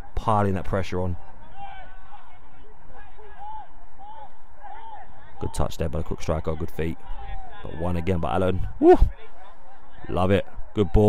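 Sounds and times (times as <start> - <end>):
distant shouts of players: 1.1 - 5.8.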